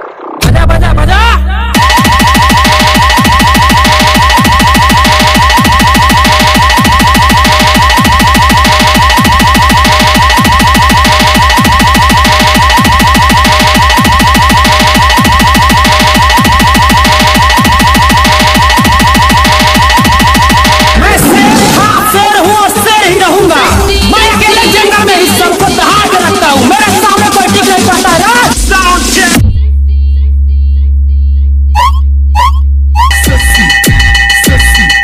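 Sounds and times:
compressed bass pulse looping: 0.2 - 35.0
steady high tone: 1.5 - 22.2, 31.8 - 35.0.

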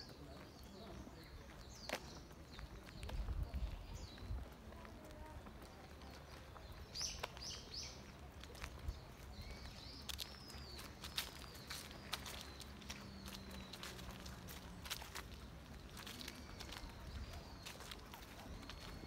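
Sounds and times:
birds chirping: 0.0 - 19.0
footsteps on paved path: 0.0 - 19.0
wind buffeting microphone: 3.0 - 4.6.

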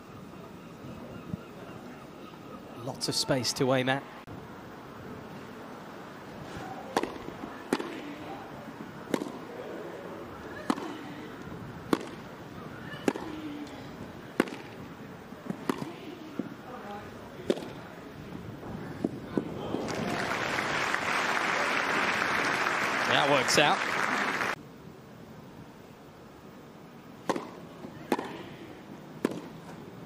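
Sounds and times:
tennis balls struck by rackets: 6.6 - 9.6, 10.6 - 14.8, 15.4 - 16.6, 17.4 - 17.8, 27.2 - 28.6, 29.2 - 29.8
crowd applause: 19.6 - 24.6.

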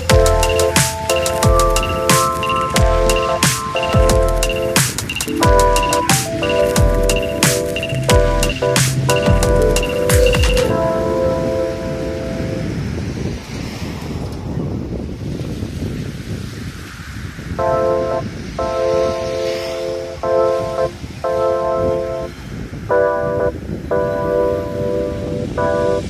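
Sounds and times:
background music with held chords: 0.0 - 12.7, 17.6 - 26.0.

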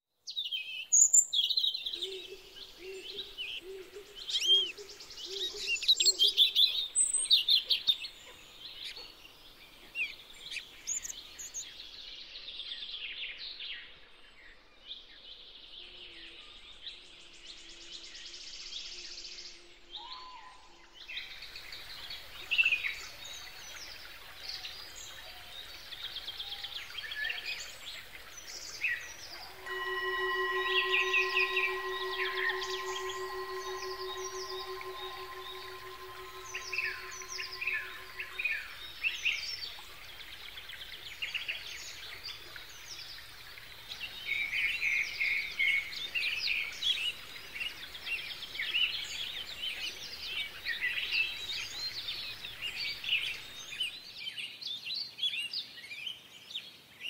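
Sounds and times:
singing bowl ringing: 29.3 - 38.8.

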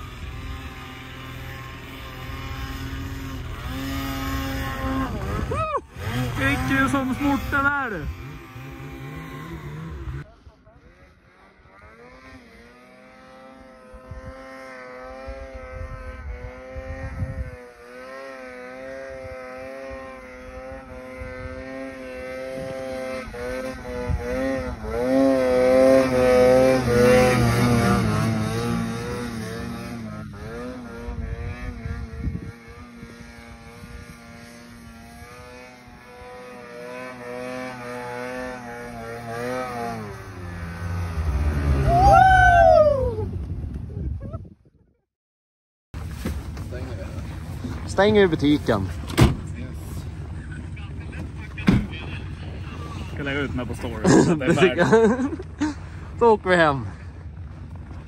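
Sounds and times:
snowmobile engine revving: 0.0 - 43.3, 46.2 - 58.0.

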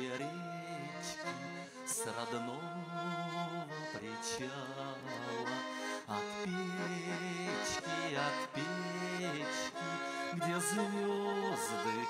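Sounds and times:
button accordion playing chords: 0.0 - 12.0.

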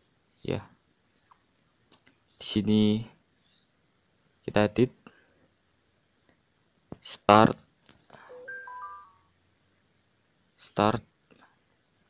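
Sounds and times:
electronic notification chime: 8.3 - 9.2.

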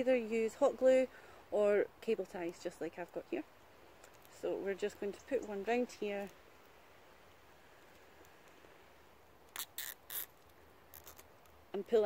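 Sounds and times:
cable tie zipping tight: 9.5 - 11.3.

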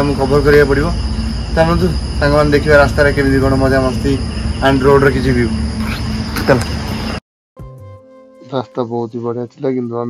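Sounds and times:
man speaking: 0.0 - 5.6, 8.4 - 10.0
crickets droning: 0.0 - 7.2.

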